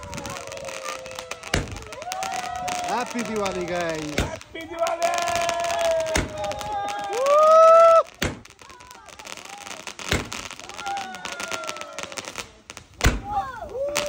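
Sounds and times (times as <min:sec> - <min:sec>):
firework bangs: 0:00.0 - 0:14.0
fireworks whistling: 0:00.0 - 0:14.0.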